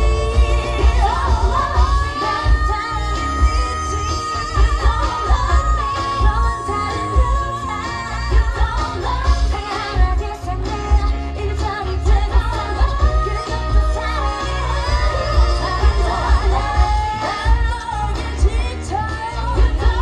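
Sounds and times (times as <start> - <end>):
pop song with female vocals: 0.0 - 20.0.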